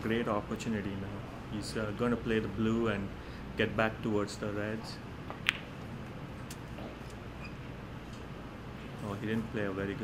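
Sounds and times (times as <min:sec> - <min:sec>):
cue tip striking ball click: 0:05.3 - 0:05.7.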